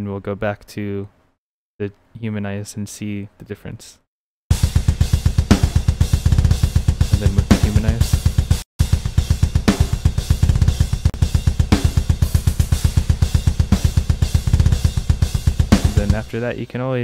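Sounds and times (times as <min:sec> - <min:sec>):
double-kick bass drum: 0:04.5 - 0:16.3
snare drum hits: 0:04.5 - 0:16.3.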